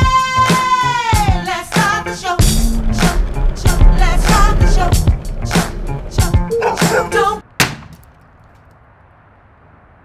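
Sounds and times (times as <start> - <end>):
music: 0.0 - 7.4
hammer striking wooden pallet: 7.6 - 8.1.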